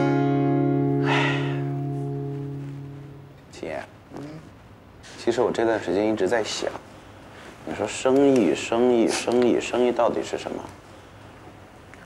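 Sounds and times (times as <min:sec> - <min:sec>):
strummed acoustic guitar chord: 0:00.0 - 0:03.5.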